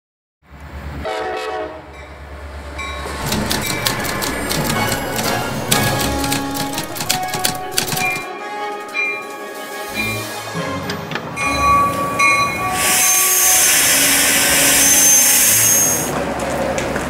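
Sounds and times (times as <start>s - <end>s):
train rumble: 0.5s - 17.0s
train horn blast: 1.0s - 2.0s, 8.3s - 16.2s
train cars clattering: 2.0s - 17.0s
background music: 3.2s - 14.5s.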